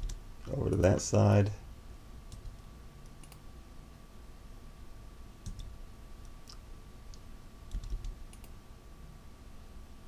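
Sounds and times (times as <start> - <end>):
faint steady whine: 0.0 - 10.0
computer mouse and keyboard clicks: 6.4 - 8.6.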